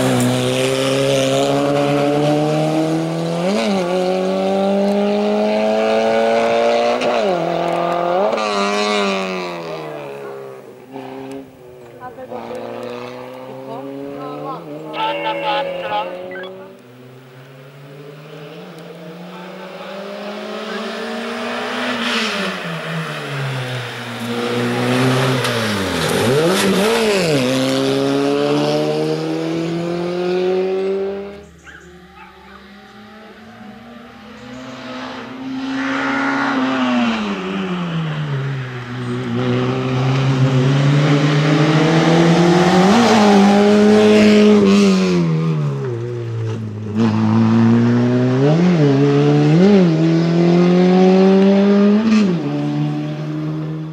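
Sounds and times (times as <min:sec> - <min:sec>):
race car engine revving: 0:00.0 - 0:11.4, 0:12.0 - 0:17.2, 0:17.8 - 0:53.9.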